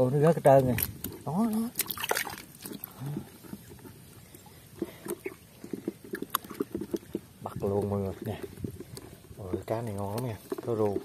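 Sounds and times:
small water splashes: 0.4 - 11.0
wet squelches in mud: 0.4 - 11.0.

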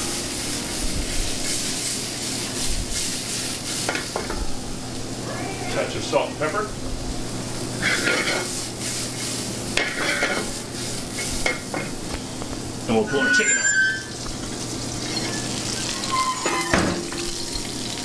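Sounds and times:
food sizzling in pans: 0.0 - 18.0
metal pans and utensils clanking: 3.8 - 4.4, 7.8 - 8.6, 9.2 - 12.2, 12.9 - 18.0.

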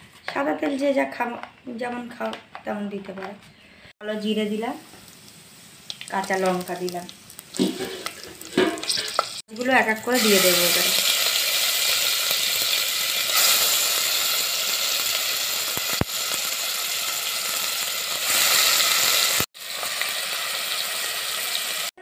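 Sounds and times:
fish sizzling in hot oil: 4.2 - 22.0.

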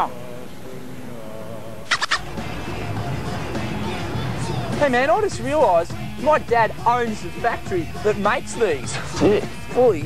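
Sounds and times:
background music: 1.8 - 10.0
shrill warbling squeal: 1.9 - 2.3.

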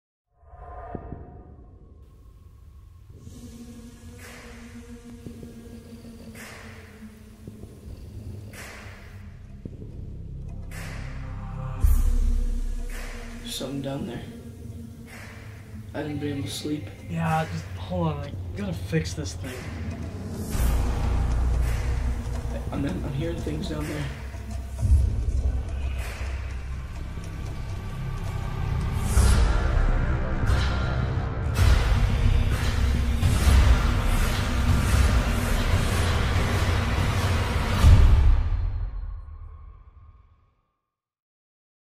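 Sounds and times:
low drone with held tones: 2.8 - 38.0.

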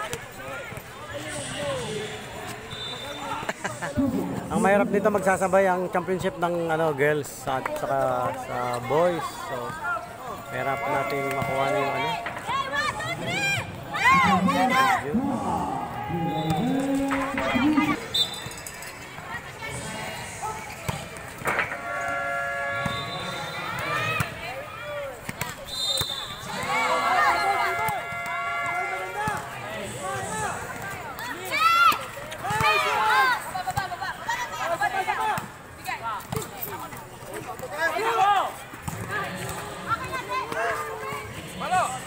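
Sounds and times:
players shouting: 9.2 - 18.4, 21.5 - 33.5.

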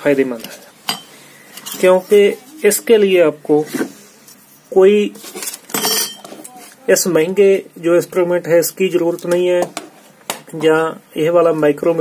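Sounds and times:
metallic clinks and scrapes of tools: 0.4 - 2.0, 5.3 - 6.6.

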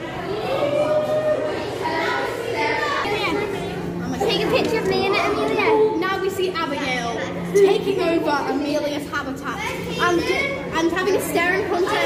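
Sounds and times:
children talking and calling out: 0.0 - 12.0
general chatter: 0.0 - 12.0.

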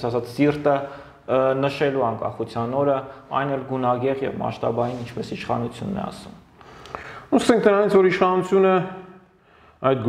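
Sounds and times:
man talking: 0.0 - 6.5, 7.2 - 9.2, 9.8 - 10.0.

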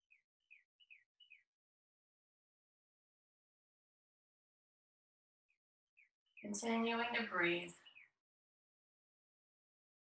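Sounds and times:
faint whistled bird song: 0.0 - 1.5, 6.0 - 8.2.

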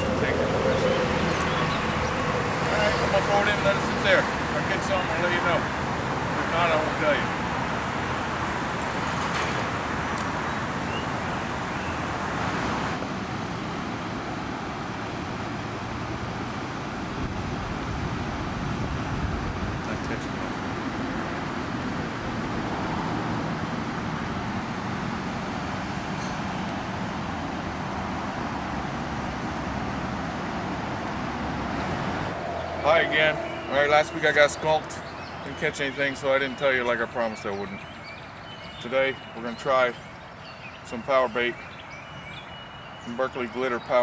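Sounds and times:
steady outdoor rushing noise: 0.0 - 44.0.

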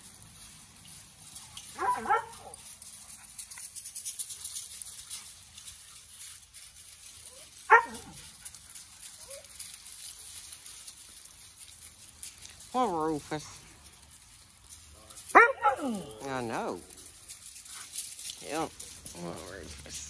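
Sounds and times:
dog barking: 1.8 - 2.6, 7.7 - 8.2, 15.3 - 16.2.

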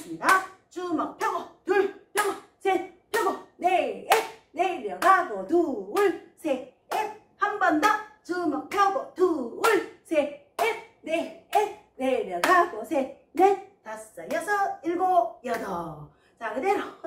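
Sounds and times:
woman counting aloud: 0.0 - 17.0
sharp hand claps: 4.0 - 5.2.

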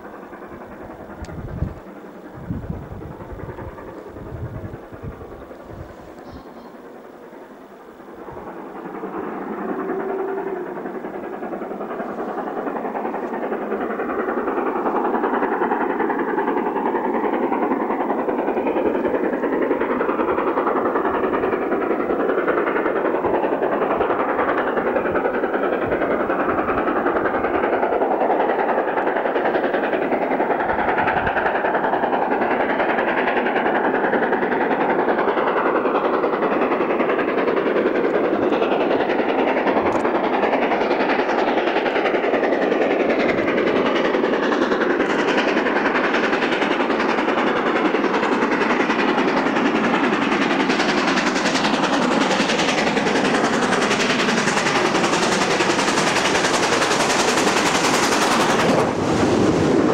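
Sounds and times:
steam locomotive exhaust rush: 0.0 - 59.9.

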